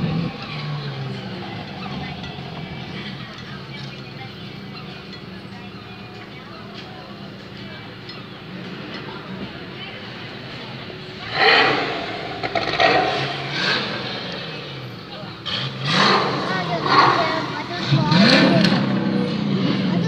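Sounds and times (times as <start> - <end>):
people talking: 0.0 - 20.0
sports car engines revving: 0.0 - 20.0.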